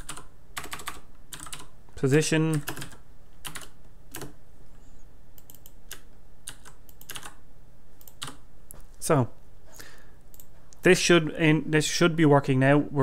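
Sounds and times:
typing on computer keyboard: 0.0s - 1.7s, 2.5s - 4.4s, 5.4s - 7.4s, 8.0s - 8.4s.

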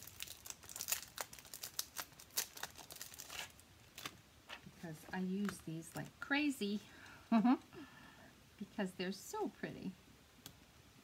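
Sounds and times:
plastic packaging crinkling and tearing: 0.0s - 6.1s.

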